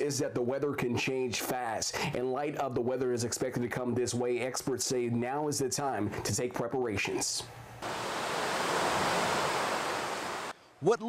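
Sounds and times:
fountain water splashing: 0:07.8 - 0:10.5.

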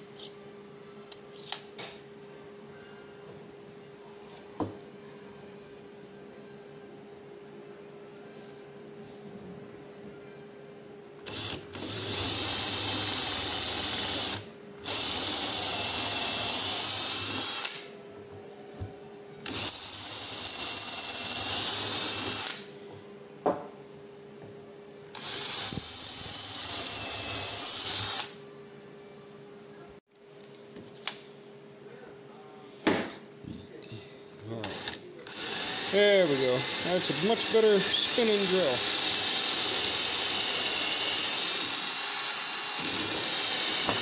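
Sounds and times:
cordless drill boring wood: 0:11.3 - 0:17.8, 0:19.5 - 0:22.6, 0:25.2 - 0:28.3, 0:34.6 - 0:44.0.

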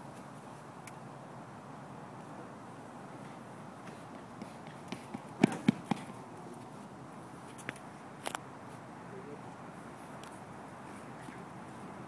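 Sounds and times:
running footsteps on rubber track: 0:03.8 - 0:06.7.

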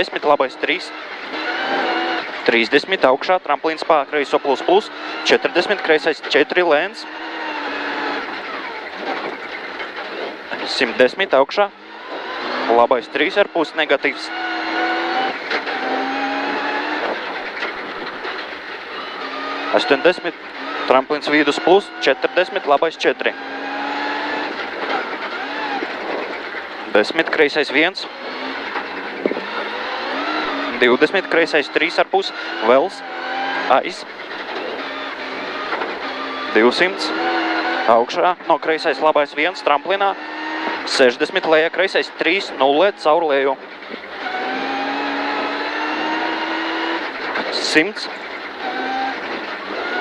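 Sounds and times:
car engine pulling under power: 0:00.0 - 0:50.0
tyre and road noise: 0:00.0 - 0:50.0.

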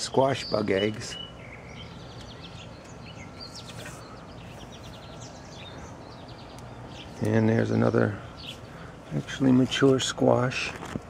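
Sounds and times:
low background noise: 0:00.0 - 0:11.0
small birds chirping: 0:00.0 - 0:11.0.

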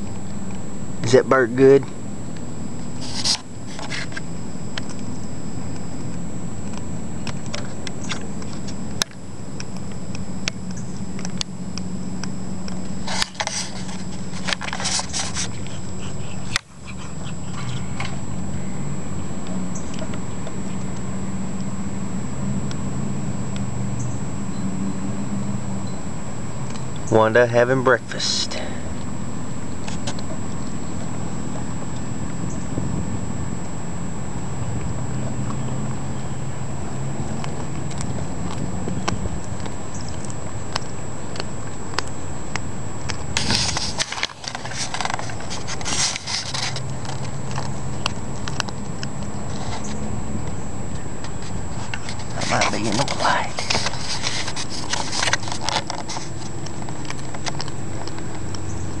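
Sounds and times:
low mechanical hum: 0:00.0 - 0:59.0
cat chewing crunching bird: 0:01.8 - 0:23.7, 0:33.2 - 0:59.0.

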